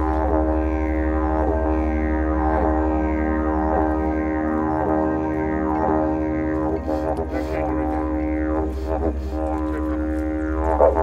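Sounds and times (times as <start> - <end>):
didgeridoo drone: 0.0 - 11.0.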